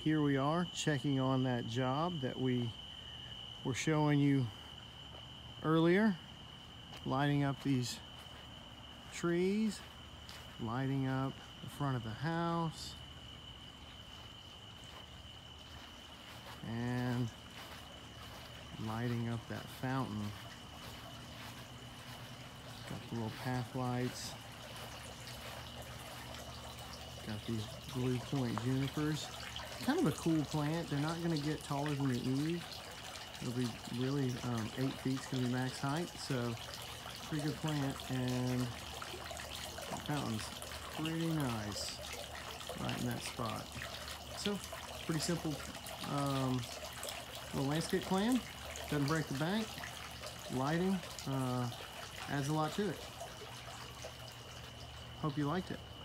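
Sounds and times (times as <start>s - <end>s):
fountain water trickling: 0.0s - 56.0s.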